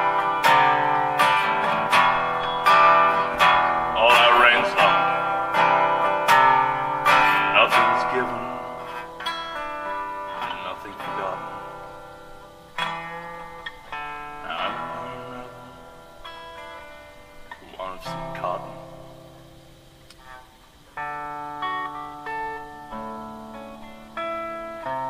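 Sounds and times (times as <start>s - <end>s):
acoustic guitar chords ringing: 0.0s - 25.0s.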